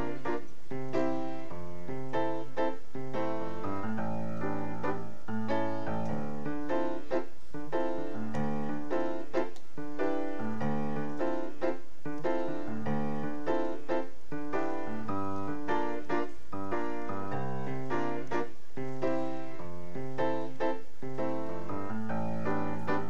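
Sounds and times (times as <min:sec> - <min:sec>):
shuffle piano playing: 0:00.0 - 0:23.0.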